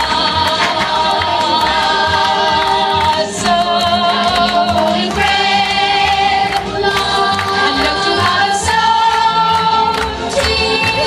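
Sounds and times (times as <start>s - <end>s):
accompaniment with steady beat: 0.0s - 11.0s
group of voices singing: 0.0s - 11.0s.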